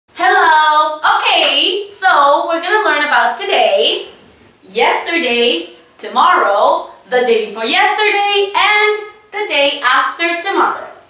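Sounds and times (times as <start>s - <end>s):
woman calling out: 0.2s - 4.1s, 4.7s - 11.0s.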